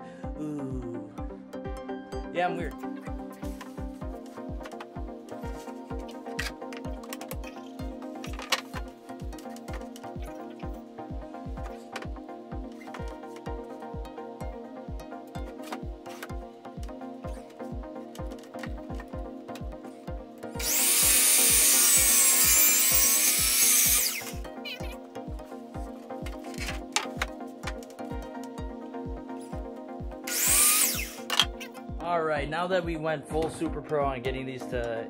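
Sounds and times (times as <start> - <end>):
background music with steady beat: 0.0 - 35.0
miter saw cutting wood: 20.6 - 24.8, 30.3 - 31.3.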